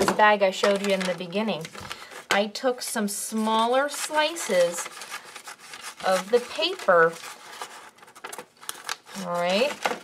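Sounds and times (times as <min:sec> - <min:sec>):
paper rustling: 0:00.0 - 0:02.5, 0:03.3 - 0:10.0.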